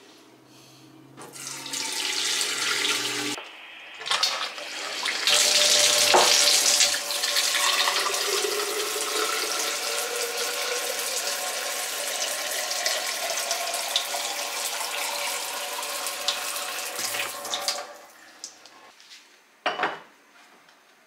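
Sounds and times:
tap water pouring into a glass vase: 0:05.2 - 0:17.8.

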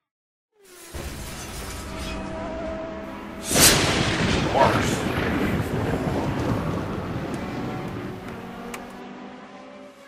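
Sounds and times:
pitched engine-like drone: 0:00.6 - 0:10.0
dense rumble from explosion-like hit: 0:03.4 - 0:08.4.

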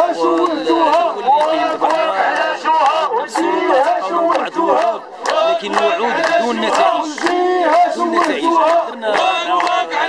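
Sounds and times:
man chanting close by: 0:00.0 - 0:10.0
protesters chanting: 0:00.0 - 0:10.0.

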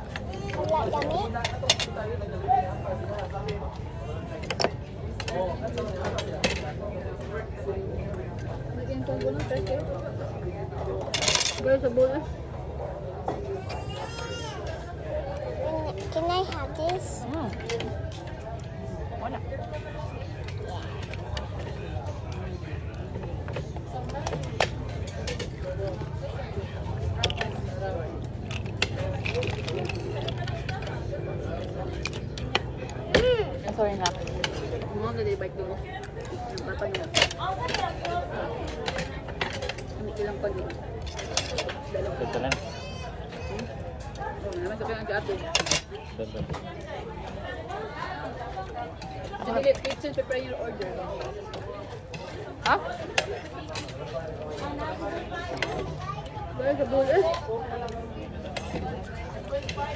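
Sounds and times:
background chatter: 0:00.0 - 0:59.9
faint background voices: 0:00.0 - 0:59.9
shells and cutlery clattering on plate: 0:11.0 - 0:11.9, 0:36.8 - 0:42.7.

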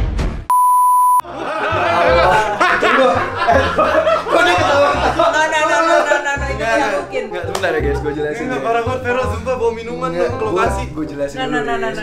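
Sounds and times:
music: 0:00.0 - 0:00.5, 0:01.2 - 0:12.0
censor bleep: 0:00.5 - 0:01.2
voices: 0:01.3 - 0:12.0.

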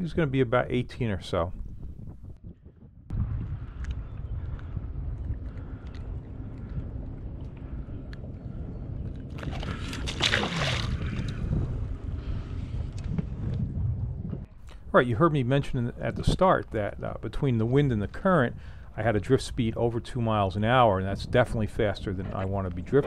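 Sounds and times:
wind rumble on microphone: 0:00.0 - 0:23.0
rush of wind noise: 0:00.6 - 0:15.0.

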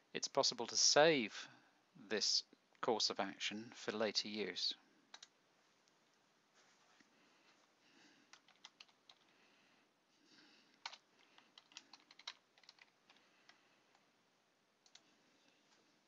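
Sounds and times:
faint keyboard typing: 0:05.0 - 0:05.4, 0:08.1 - 0:09.4, 0:10.6 - 0:14.2, 0:14.8 - 0:16.0.

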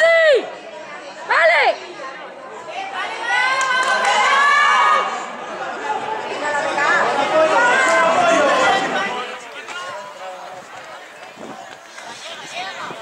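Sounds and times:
voices shouting: 0:02.8 - 0:13.0.

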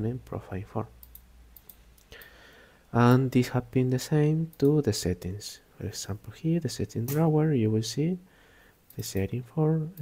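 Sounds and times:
computer mouse clicks: 0:01.0 - 0:02.4.

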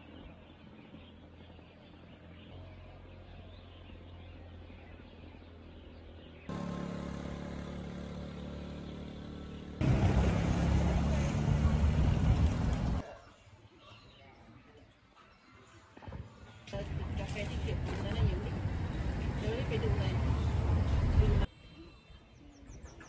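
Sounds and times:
vehicle engine driving along road: 0:00.0 - 0:13.0, 0:16.7 - 0:21.5
faint outdoor ambience: 0:00.0 - 0:23.0.

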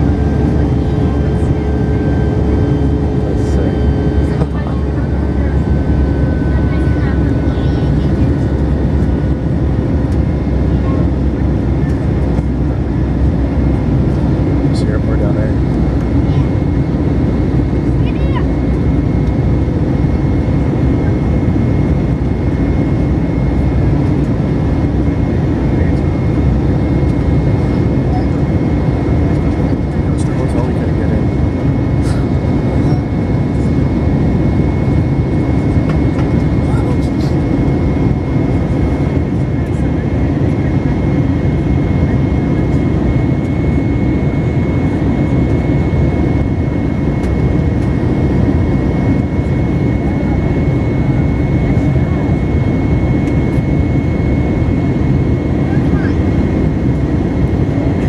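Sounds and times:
jet engine and airflow roar: 0:00.0 - 0:58.0
thin steady whine: 0:00.0 - 0:58.0.

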